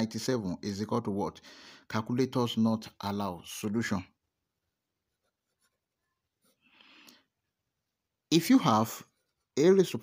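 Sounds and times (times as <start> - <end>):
pen scratching on paper: 5.0 - 6.6.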